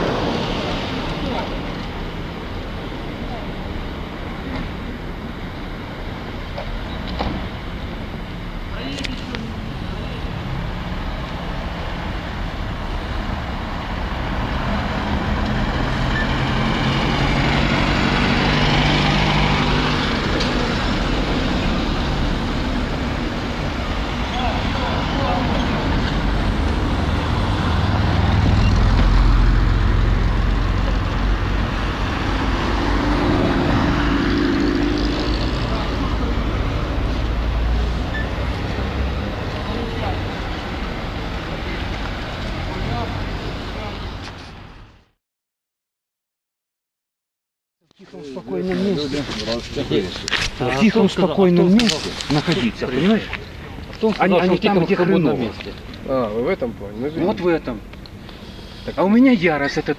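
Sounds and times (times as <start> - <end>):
cars driving past: 0.0 - 45.2.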